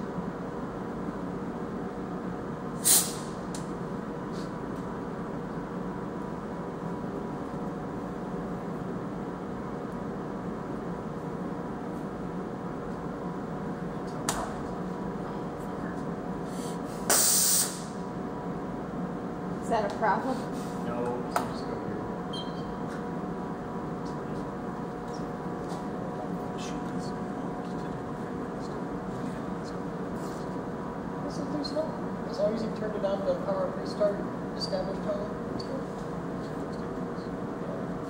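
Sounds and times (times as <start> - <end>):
compressed air hissing: 2.8 - 3.4, 16.4 - 18.0.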